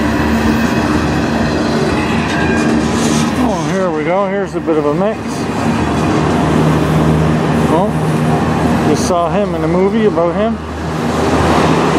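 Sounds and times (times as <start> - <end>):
train wheels rumbling on rails: 0.0 - 11.9.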